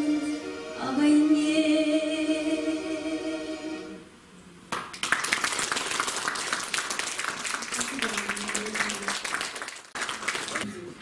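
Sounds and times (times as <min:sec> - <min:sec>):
audience applauding: 0:04.7 - 0:11.0.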